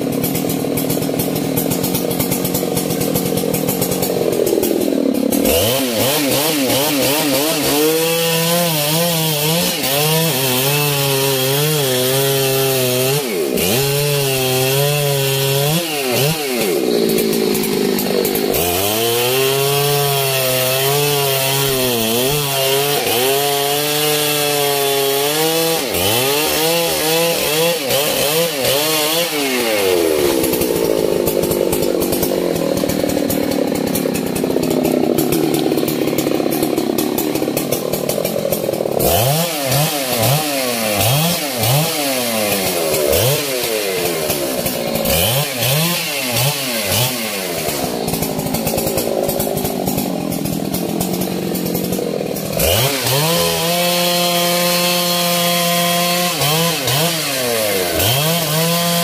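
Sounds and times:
chainsaw cutting wood: 0:00.0 - 0:59.0
chainsaw revving: 0:00.0 - 0:59.0.

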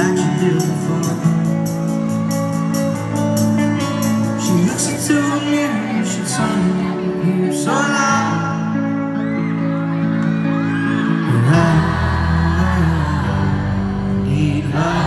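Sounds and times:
live band playing pop-rock: 0:00.0 - 0:15.0.

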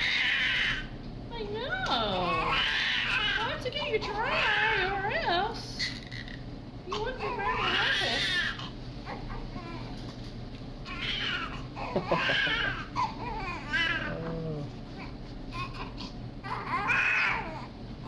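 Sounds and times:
newborn baby crying: 0:02.3 - 0:04.8, 0:05.8 - 0:09.8, 0:10.8 - 0:14.3, 0:15.0 - 0:17.8.

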